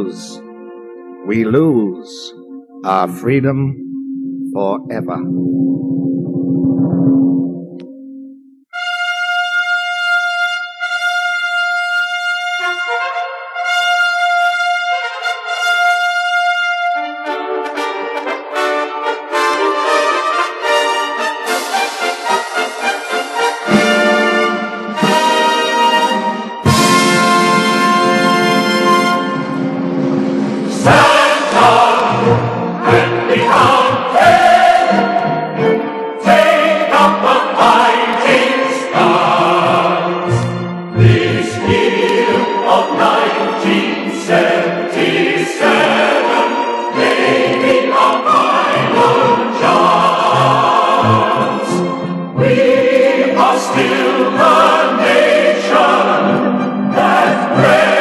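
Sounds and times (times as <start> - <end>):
choir singing: 30.6 - 58.0.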